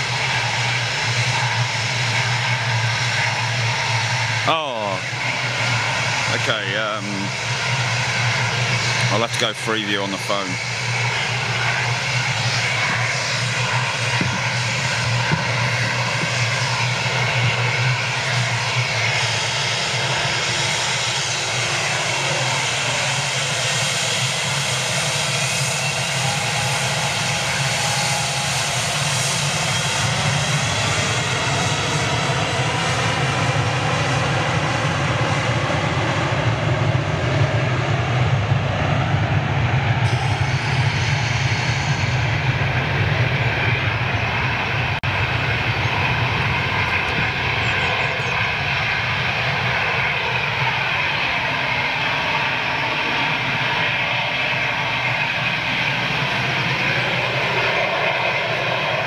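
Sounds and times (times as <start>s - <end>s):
jet engines roaring and whining: 0.0s - 59.0s.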